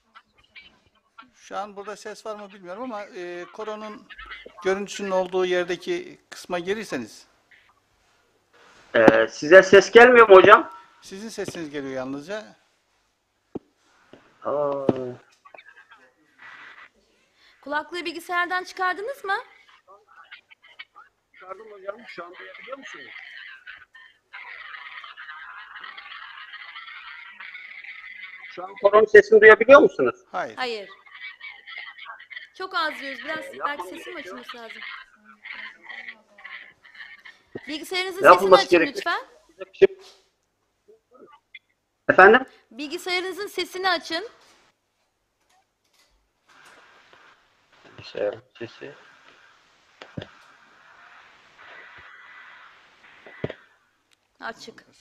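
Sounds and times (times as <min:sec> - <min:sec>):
faint audio line hiss: 0:00.0 - 0:55.0
faint video soundtrack through call: 0:00.0 - 0:55.0.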